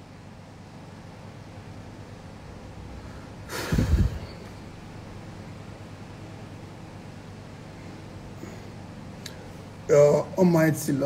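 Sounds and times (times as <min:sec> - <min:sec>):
man snorting loudly: 0:03.5 - 0:04.4.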